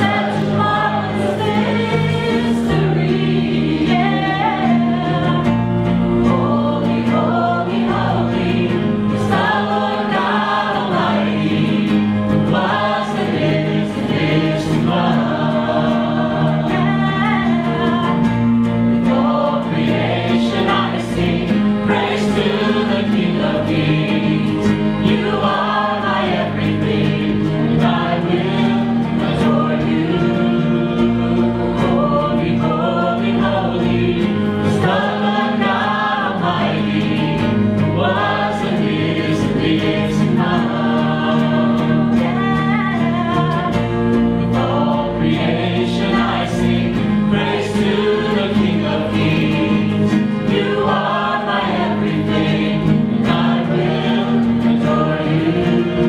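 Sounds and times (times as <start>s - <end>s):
live worship band with guitars: 0.0s - 56.0s
several voices singing: 0.0s - 56.0s.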